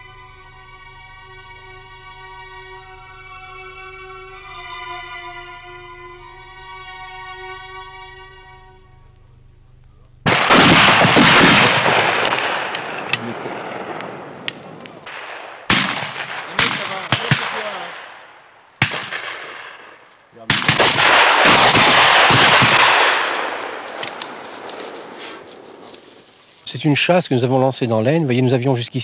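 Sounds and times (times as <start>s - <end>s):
shotguns firing: 10.2s - 25.7s.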